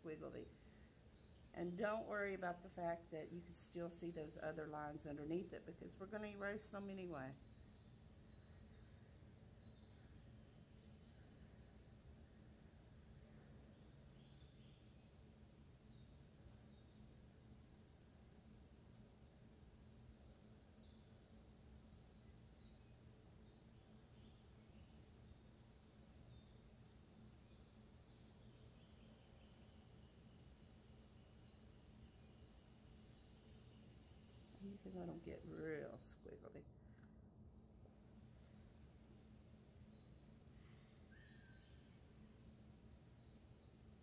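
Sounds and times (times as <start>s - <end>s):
distant birds chirping: 37.6s - 44.0s.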